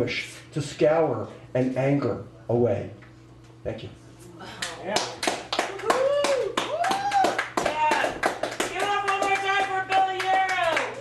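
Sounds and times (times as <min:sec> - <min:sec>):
audience applauding: 0:04.6 - 0:11.0
voices whooping and calling out: 0:05.7 - 0:07.6.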